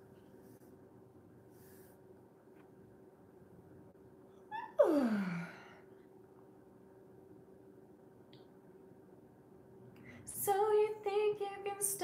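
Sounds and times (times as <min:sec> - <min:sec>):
woman yawning: 0:04.6 - 0:05.8.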